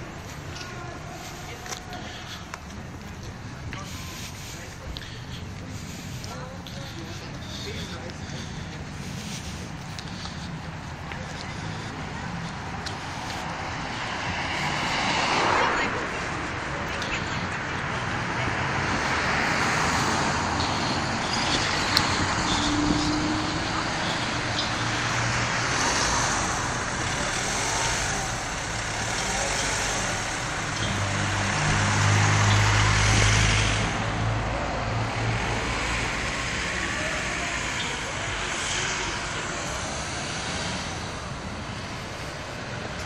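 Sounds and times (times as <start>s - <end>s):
car passing: 0.0s - 43.0s
steady traffic noise: 0.0s - 43.0s.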